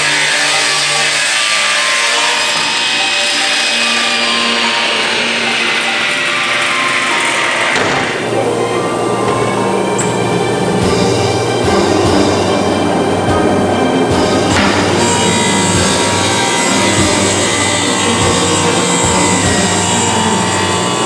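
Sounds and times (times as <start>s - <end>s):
background music: 0.0s - 21.0s
table saw cutting wood: 0.0s - 21.0s.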